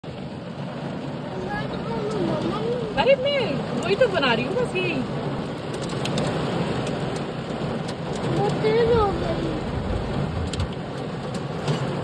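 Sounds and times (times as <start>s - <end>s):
rain and hail on car roof: 0.0s - 12.0s.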